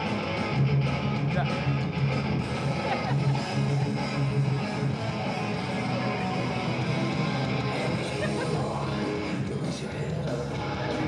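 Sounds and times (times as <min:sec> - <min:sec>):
rock band music: 0:00.0 - 0:11.0.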